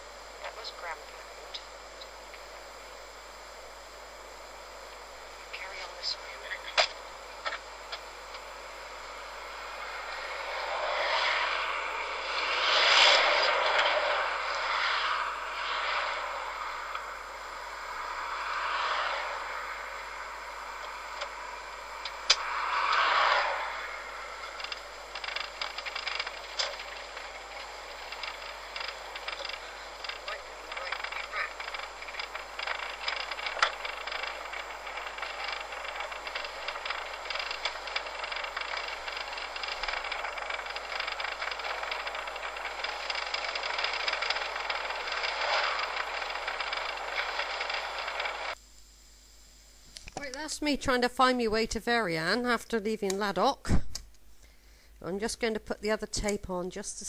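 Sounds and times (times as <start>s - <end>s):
car engine and road noise: 0.0s - 49.3s
rapid ticking and rattling: 4.9s - 48.6s.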